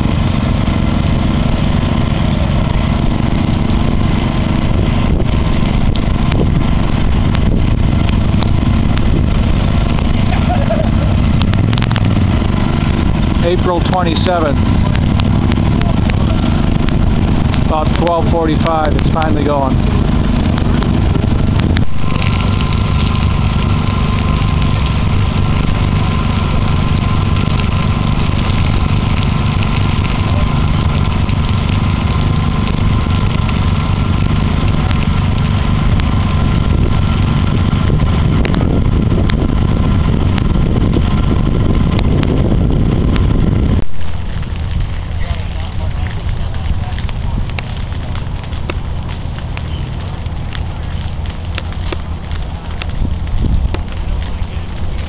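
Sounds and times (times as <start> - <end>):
grass fire rumbling and crackling: 0.0 - 55.0
low flames crackling: 0.0 - 55.0.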